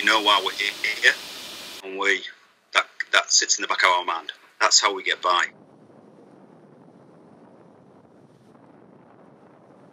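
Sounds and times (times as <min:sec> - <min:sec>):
wind on microphone: 0:05.5 - 0:09.9.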